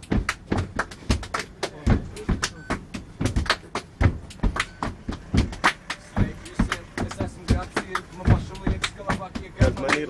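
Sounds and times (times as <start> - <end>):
percussive drum beat: 0.0 - 10.0.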